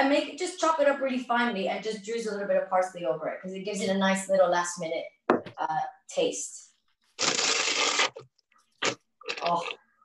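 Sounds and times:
plastic bag crinkling: 7.2 - 9.8.

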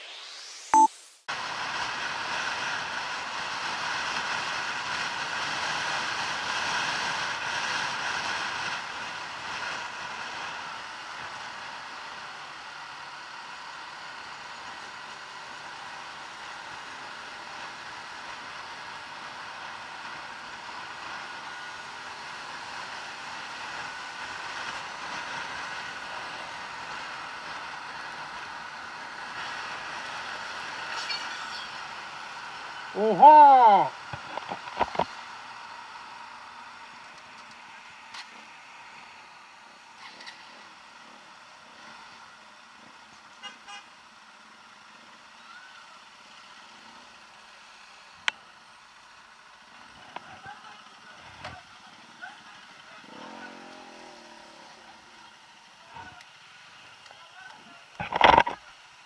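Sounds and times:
wind and road noise: 0.0 - 59.0.

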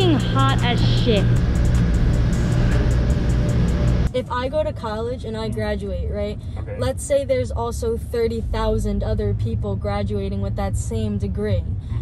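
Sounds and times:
heavy bass music: 0.0 - 4.6.

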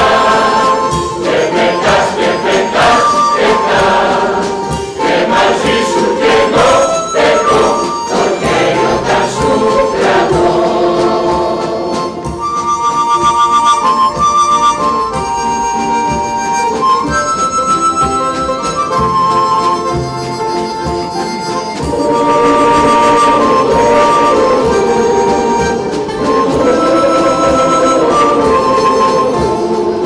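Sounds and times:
mixed choir singing: 0.0 - 12.5, 21.8 - 30.0
harmonica held notes and chords: 0.0 - 30.0.

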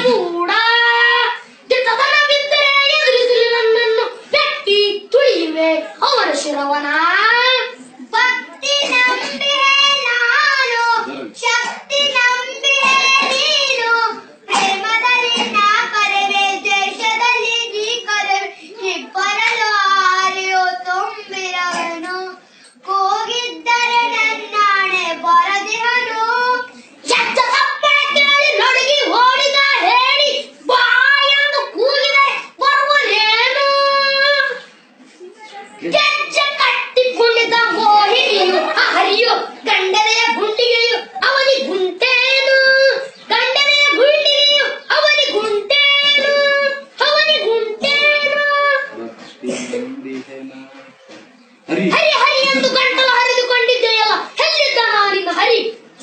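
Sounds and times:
boy singing unaccompanied: 0.0 - 34.7, 35.3 - 50.3, 51.7 - 55.8.

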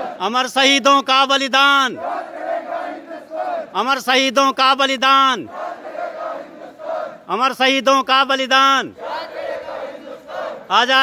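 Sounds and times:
group chanting: 0.0 - 0.3, 1.9 - 3.8, 5.4 - 7.3, 8.9 - 11.0.

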